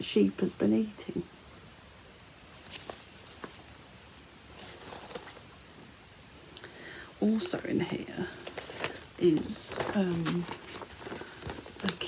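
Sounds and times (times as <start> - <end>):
faint rustling: 2.4 - 3.8, 4.5 - 12.0.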